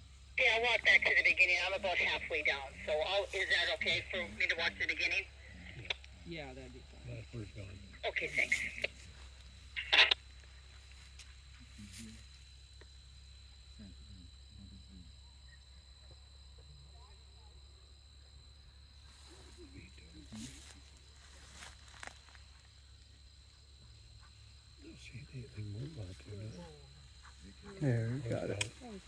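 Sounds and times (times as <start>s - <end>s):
high-pitched insect drone: 0.0s - 29.0s
faint distant voices: 0.4s - 10.2s, 13.8s - 15.1s, 19.1s - 22.1s, 24.8s - 29.0s.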